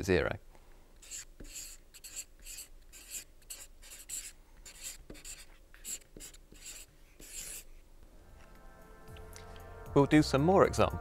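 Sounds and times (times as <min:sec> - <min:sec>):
marker pen scratching on whiteboard: 0:01.0 - 0:07.8.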